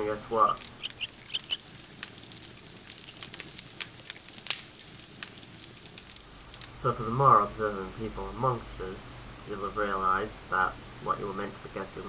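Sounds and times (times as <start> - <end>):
campfire crackling: 0.0 - 12.0.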